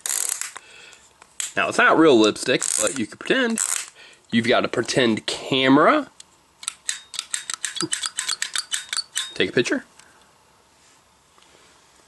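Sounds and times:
plastic toy camera clicking: 6.6s - 9.4s.

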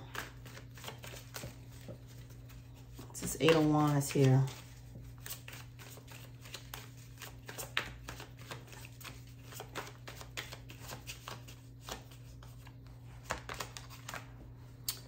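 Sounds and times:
cards being shuffled: 0.0s - 15.0s
faint steady hum: 0.0s - 15.0s.

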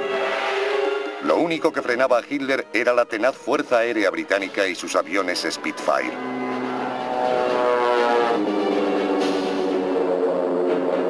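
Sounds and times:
propeller plane engine droning: 5.6s - 11.0s.

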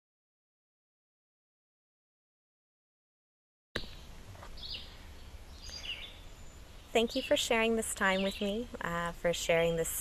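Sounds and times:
faint bird chirps: 3.8s - 8.8s
outdoor background noise: 3.8s - 10.0s.

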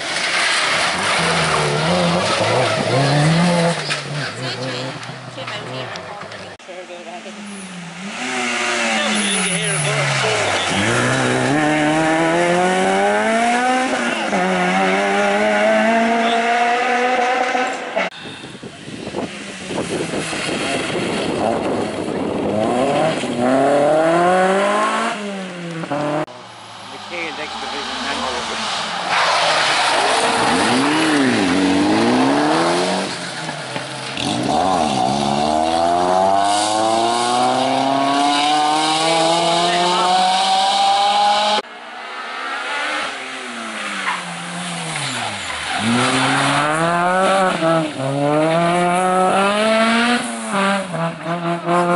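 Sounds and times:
rally car engines revving: 0.0s - 51.9s.

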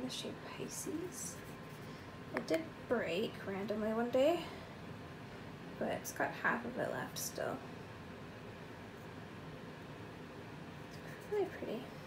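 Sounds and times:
low room tone hiss: 0.0s - 12.0s.

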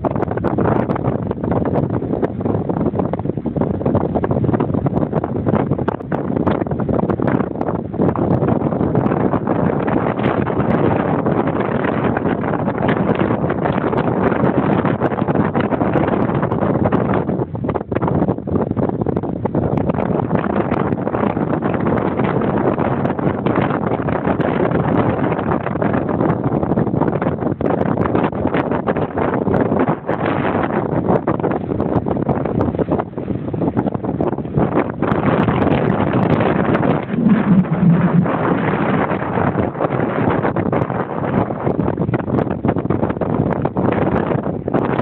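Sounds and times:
strong wind on microphone: 0.0s - 45.0s.

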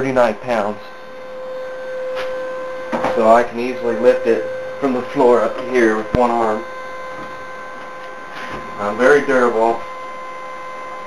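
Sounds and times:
high-pitched hum: 0.0s - 11.0s.

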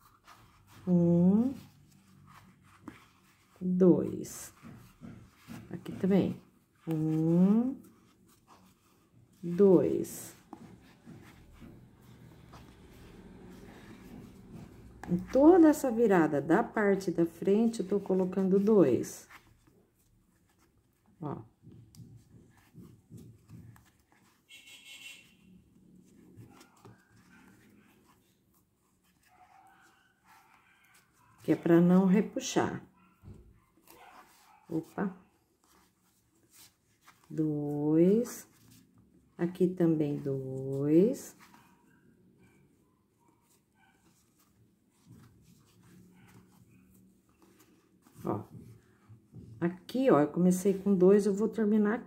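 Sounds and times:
crochet hook and yarn handling: 0.0s - 25.4s, 26.0s - 41.8s, 43.2s - 52.0s.

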